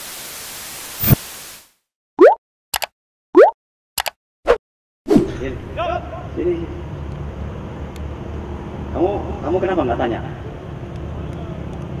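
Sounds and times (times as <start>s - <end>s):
rising bloop pops: 2.2s - 2.4s, 3.4s - 3.6s
sharp clicks: 4.0s - 4.2s.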